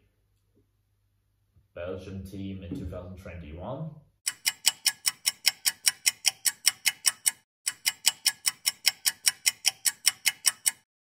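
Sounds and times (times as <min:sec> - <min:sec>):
rapid sharp ticking: 0:04.3 - 0:10.9.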